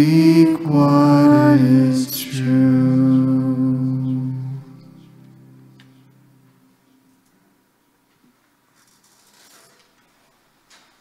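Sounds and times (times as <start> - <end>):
worship song chord sung and played: 0.0 - 6.9.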